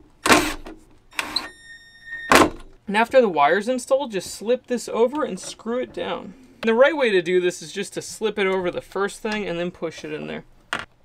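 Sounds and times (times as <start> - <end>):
cordless drill driving a screw: 0.2 - 1.5.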